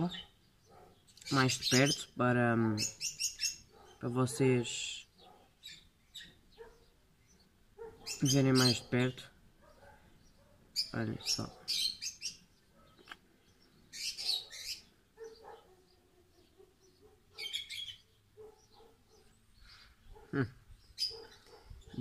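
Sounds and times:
birds chirping: 0:00.0 - 0:22.0.

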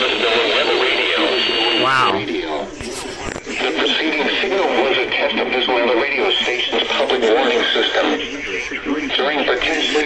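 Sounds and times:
broadcast voice over radio speaker: 0:01.7 - 0:02.6.

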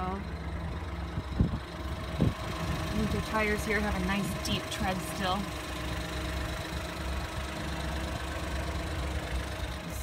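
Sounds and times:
car engine idling: 0:00.0 - 0:10.0.

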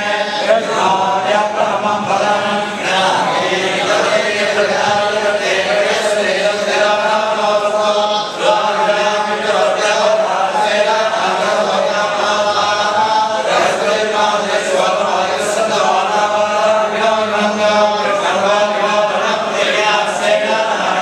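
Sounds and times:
men chanting in unison: 0:00.0 - 0:21.0.

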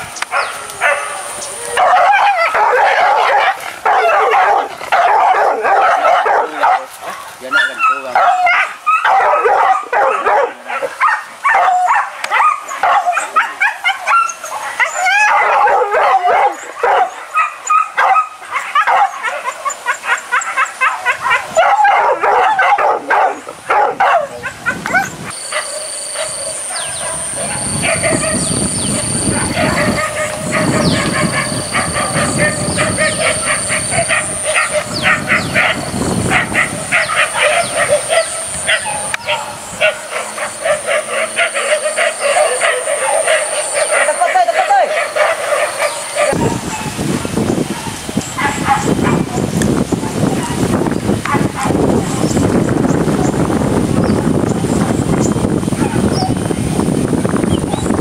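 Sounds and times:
dogs yelping and baying: 0:00.2 - 0:52.4
high-pitched whine: 0:25.4 - 0:29.5.

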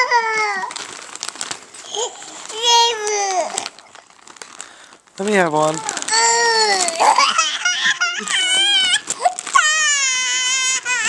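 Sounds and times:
child whining wail: 0:00.0 - 0:00.8, 0:01.9 - 0:03.8, 0:05.8 - 0:11.0
plastic chip bag crinkling: 0:00.0 - 0:11.0.

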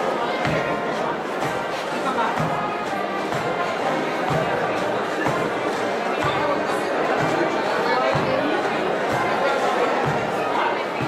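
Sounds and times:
spectators chattering: 0:00.0 - 0:11.0
bass drum beat: 0:00.4 - 0:11.0.

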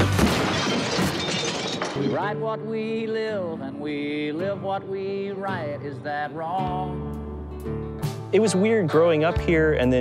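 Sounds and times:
glass pieces scattering: 0:00.0 - 0:02.4
glass shattering: 0:00.0 - 0:02.5.

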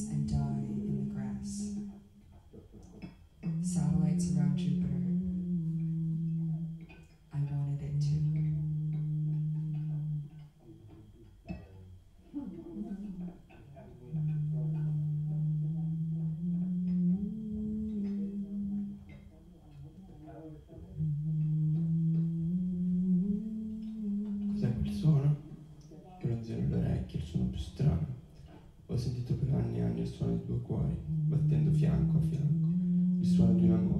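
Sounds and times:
person humming: 0:00.0 - 0:02.0, 0:03.4 - 0:10.4, 0:12.3 - 0:19.4, 0:20.6 - 0:25.4, 0:29.0 - 0:33.9
low held drone tone: 0:00.0 - 0:33.9.

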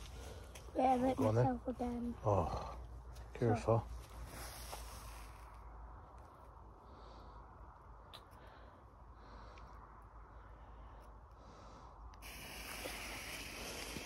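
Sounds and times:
firework fuse fizzing: 0:12.2 - 0:14.0.

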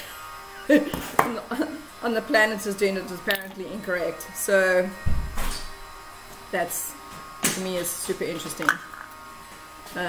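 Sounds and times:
faint background music: 0:00.0 - 0:10.0
woman laughing: 0:00.7 - 0:01.9.

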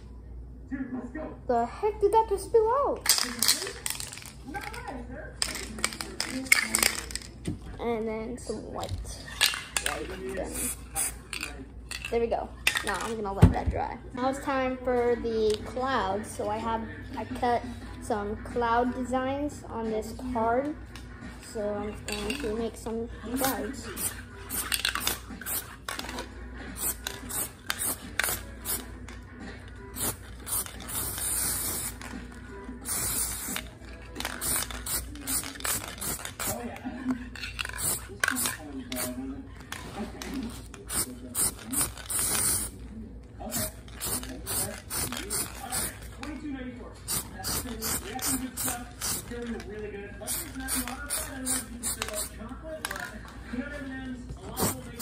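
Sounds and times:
spray paint can hissing: 0:23.4 - 0:25.7, 0:26.8 - 0:28.8, 0:30.0 - 0:32.1, 0:32.8 - 0:33.7, 0:34.3 - 0:36.6, 0:37.8 - 0:39.1, 0:40.9 - 0:42.7, 0:43.5 - 0:46.0, 0:47.1 - 0:49.3, 0:50.3 - 0:52.3.

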